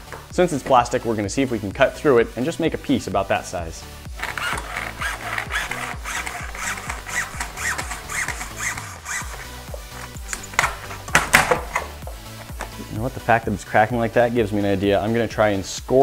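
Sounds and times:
background music: 0.0s - 16.0s
hacksaw cutting plastic: 4.2s - 12.8s
plastic cracking: 4.2s - 12.8s.

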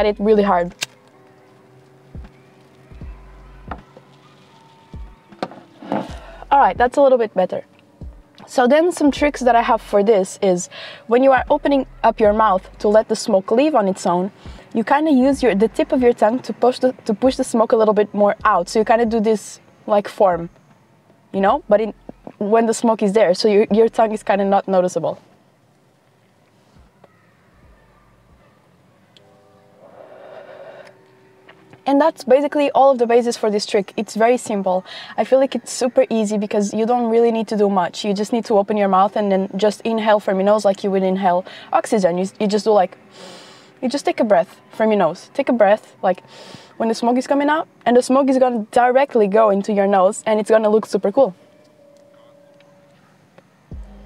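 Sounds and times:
faint background music: 0.0s - 54.0s
faint steady tones: 0.0s - 54.0s
soft breath inhaling smoke: 29.8s - 31.0s, 43.1s - 43.8s, 46.3s - 46.8s.

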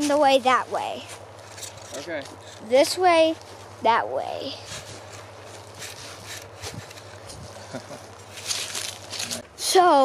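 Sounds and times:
footsteps crunching on dry leaves: 0.0s - 3.8s, 4.6s - 9.6s.

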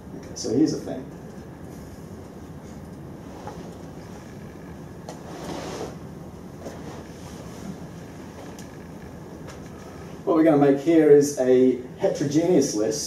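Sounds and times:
room hum: 0.0s - 13.0s.

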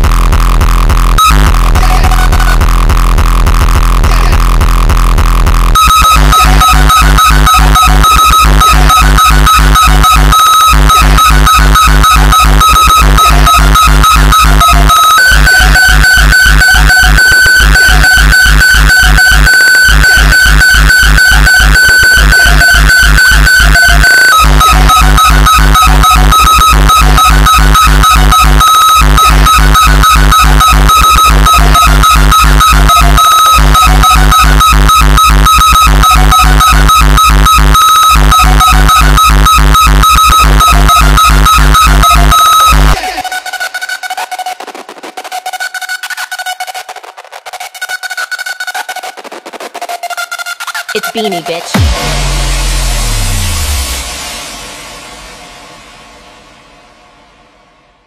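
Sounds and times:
electronic dance music: 0.0s - 58.0s.

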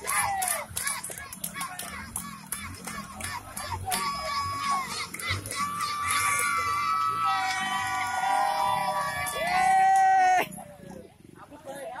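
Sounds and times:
crowd of people talking: 0.0s - 12.0s.

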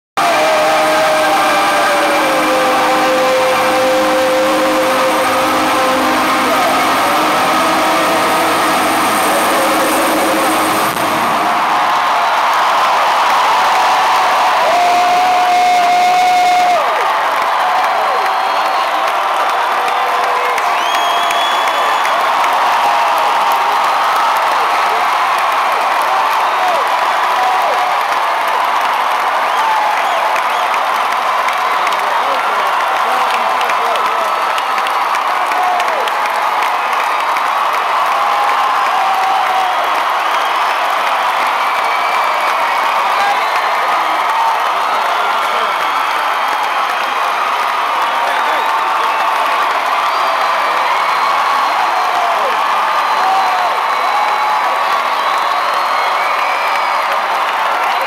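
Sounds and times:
crowd cheering: 0.0s - 58.0s
rock band with singing: 0.2s - 12.0s.

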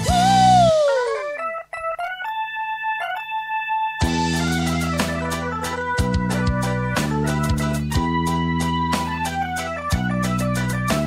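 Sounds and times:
electric keyboard notes: 0.0s - 11.0s
held keyboard chord: 0.0s - 11.0s.

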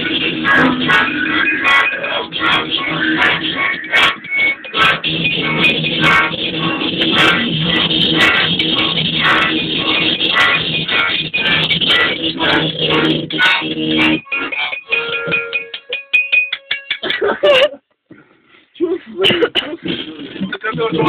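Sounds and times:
one-string guitar: 0.0s - 17.5s
chaotic noise music: 0.0s - 17.6s.

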